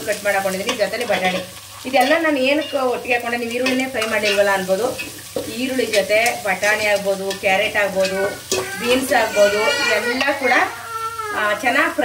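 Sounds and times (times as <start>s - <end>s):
vegetables sizzling in a pot: 0.0s - 12.0s.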